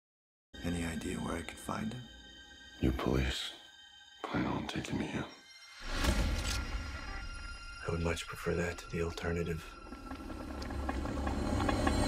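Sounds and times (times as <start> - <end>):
low rumbling soundtrack: 6.0 - 12.0.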